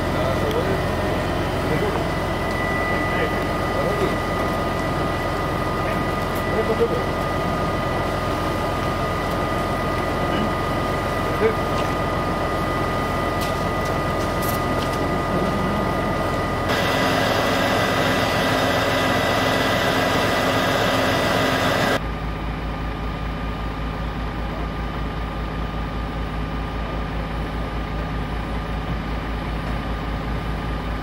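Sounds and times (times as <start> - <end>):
engine noise: 0.0 - 31.0
vehicle engine idling: 0.0 - 31.0
loud rushing hiss: 16.7 - 22.0.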